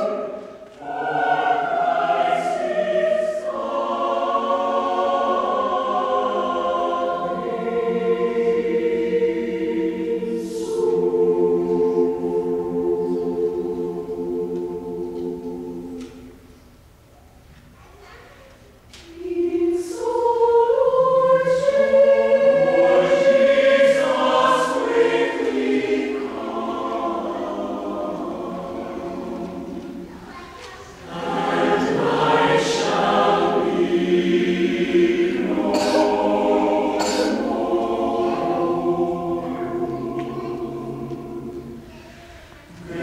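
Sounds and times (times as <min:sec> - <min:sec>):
mixed choir singing a cappella: 0:00.0 - 0:16.8, 0:19.0 - 0:43.0.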